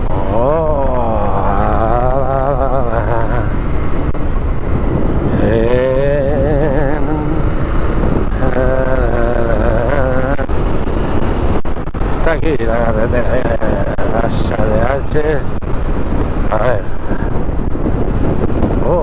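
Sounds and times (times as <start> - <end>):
motorcycle engine: 0.0 - 19.0
wind and road noise: 0.0 - 19.0.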